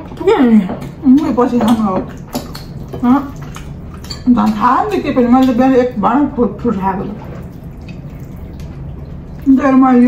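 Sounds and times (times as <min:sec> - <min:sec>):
wet eating by hand: 0:00.0 - 0:10.0.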